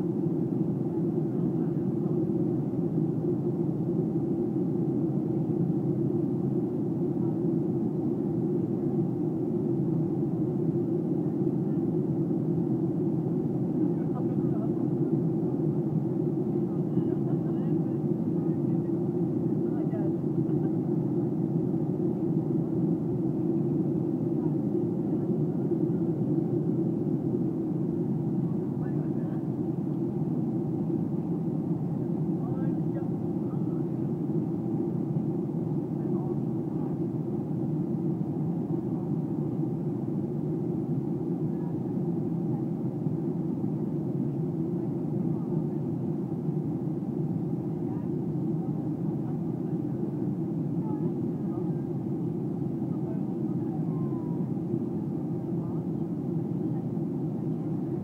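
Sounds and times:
faint passenger voices: 0.0s - 58.0s
jet airliner cabin roar: 0.0s - 58.0s.

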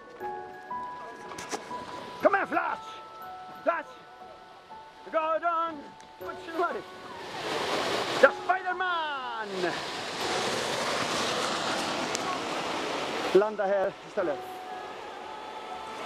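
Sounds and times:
steady rushing noise: 7.3s - 13.8s
long falling yell: 14.6s - 16.0s.

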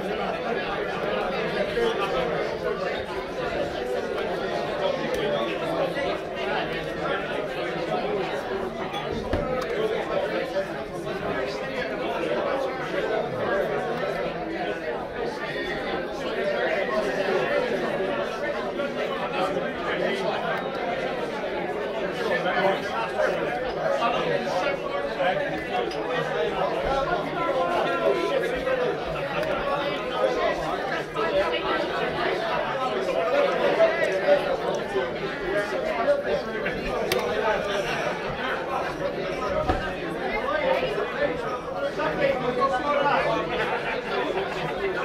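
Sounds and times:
chatter of many voices: 0.0s - 45.0s.

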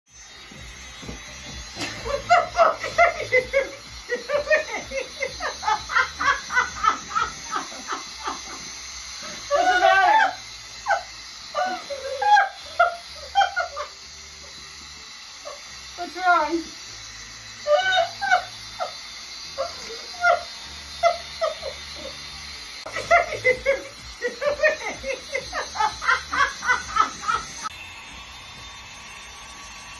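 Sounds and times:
women laughing: 1.7s - 14.7s, 17.6s - 27.7s.

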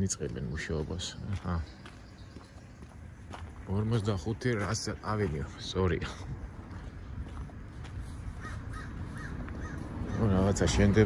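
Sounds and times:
crow cawing: 8.3s - 10.4s.

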